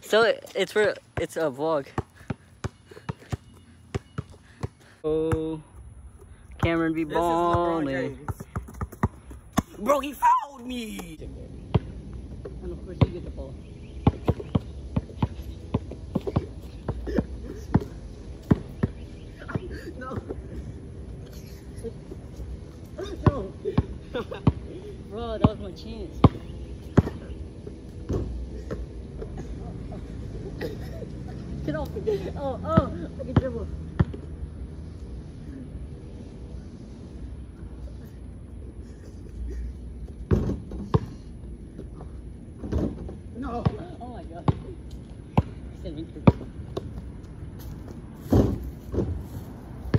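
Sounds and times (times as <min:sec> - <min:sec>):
basketball bouncing on asphalt: 0:01.1 - 0:05.6, 0:06.6 - 0:09.9, 0:11.6 - 0:20.4, 0:25.3 - 0:27.4, 0:32.7 - 0:34.3, 0:42.6 - 0:49.2.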